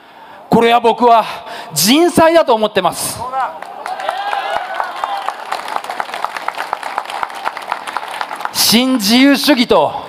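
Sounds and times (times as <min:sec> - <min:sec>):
audience clapping: 0:03.2 - 0:09.2.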